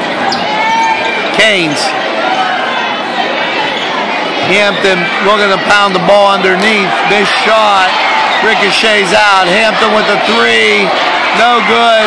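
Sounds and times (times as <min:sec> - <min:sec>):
crowd chattering in echoing hall: 0:00.0 - 0:12.0.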